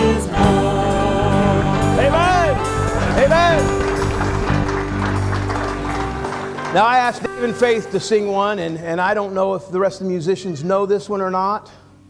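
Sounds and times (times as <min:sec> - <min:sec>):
person singing: 0:00.0 - 0:04.5
worship band with guitars: 0:00.0 - 0:09.3.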